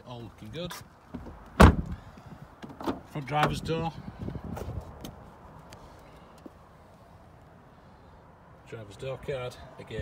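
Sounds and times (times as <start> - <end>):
car door shutting thud: 1.2 - 2.0.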